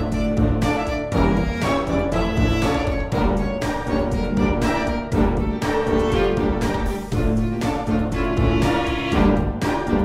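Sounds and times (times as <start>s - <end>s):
orchestral strings playing chords: 0.0s - 10.0s.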